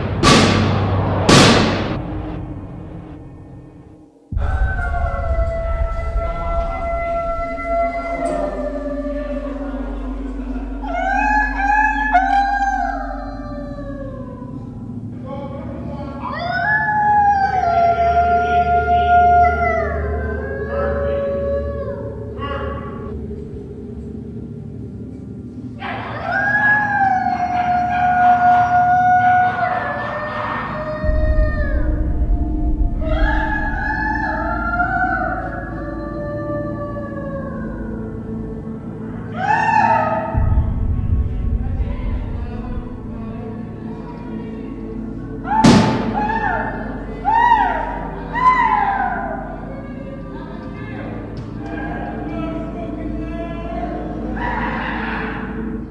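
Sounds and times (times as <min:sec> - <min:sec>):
deep low rumble: 0:00.0 - 0:15.1, 0:31.0 - 0:36.1, 0:40.3 - 0:45.5
steady low hum: 0:00.0 - 0:25.9, 0:30.6 - 0:48.4
low steady drone: 0:00.0 - 0:55.9
people wailing and howling: 0:01.2 - 0:55.9
person wailing: 0:04.4 - 0:14.8.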